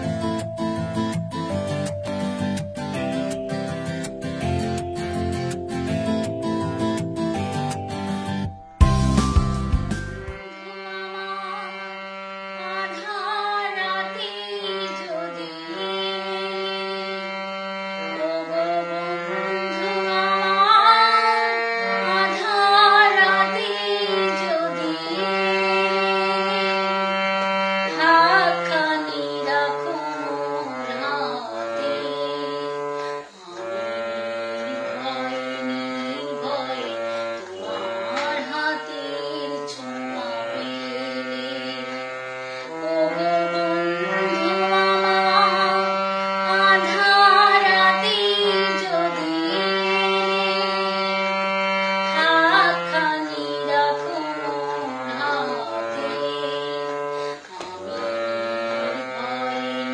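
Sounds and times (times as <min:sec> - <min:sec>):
low instrumental drone: 0:00.0 - 0:12.4
woman singing: 0:10.4 - 0:12.0, 0:12.6 - 0:17.4, 0:18.0 - 0:27.2, 0:27.8 - 0:33.6, 0:34.5 - 0:59.9.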